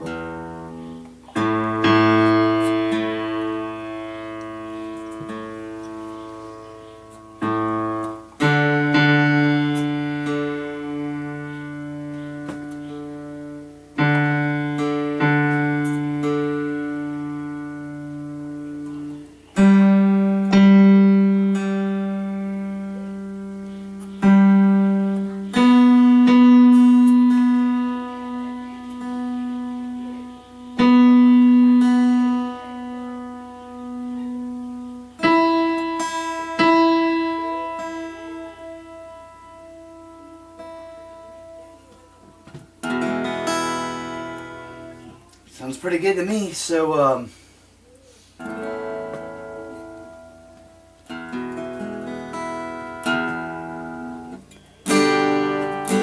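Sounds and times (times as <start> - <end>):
acoustic guitar notes plucked: 0.0 - 56.0.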